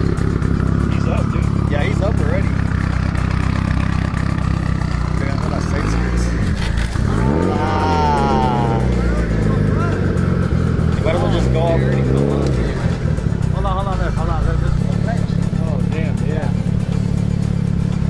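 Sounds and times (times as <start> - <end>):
voices: 0.0 - 17.3
car engine idling: 0.0 - 18.0.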